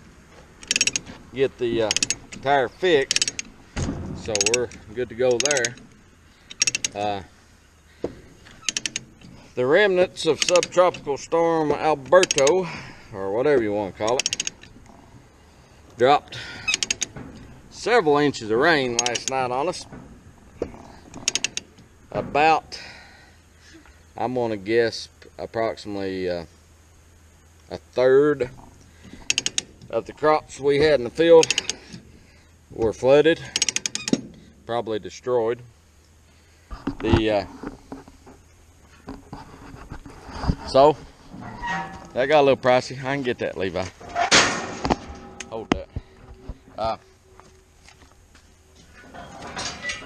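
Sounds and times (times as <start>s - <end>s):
faint creak: 7.9s - 9.6s, 14.1s - 17.6s, 18.8s - 21.8s, 38.9s - 42.8s
sharp clicks: 18.9s - 19.4s.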